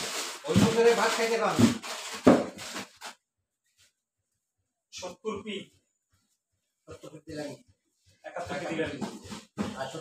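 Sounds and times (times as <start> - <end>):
rustle of boxed goods: 0.0 - 3.2.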